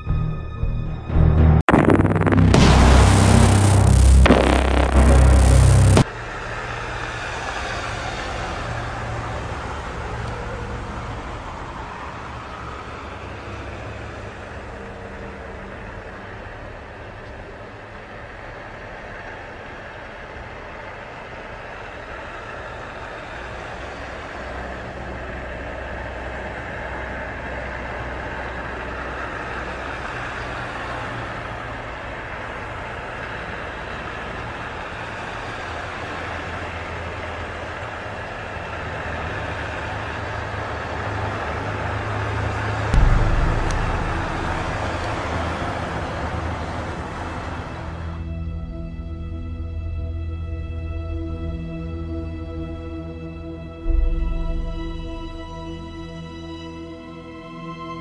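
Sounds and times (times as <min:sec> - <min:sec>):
rushing rumbling noise: 0:01.0 - 0:33.2, 0:38.9 - 0:51.0, 0:52.5 - 0:57.1
sudden low thump: 0:01.6 - 0:06.0, 0:43.0 - 0:45.9, 0:53.9 - 0:56.6.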